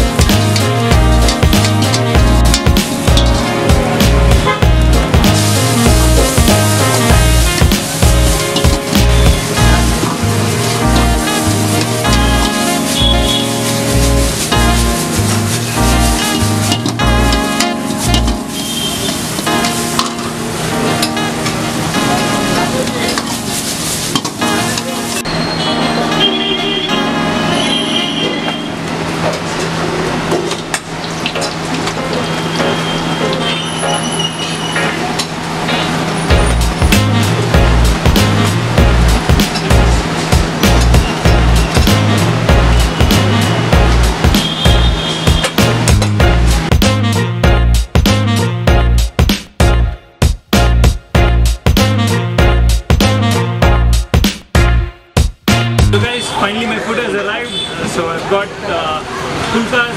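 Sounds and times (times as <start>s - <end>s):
bass beat: 0.0s - 18.5s, 36.3s - 56.1s
background music: 0.0s - 29.2s, 35.8s - 56.2s
food sizzling in hot oil: 5.2s - 17.0s, 17.6s - 20.5s, 23.1s - 25.3s.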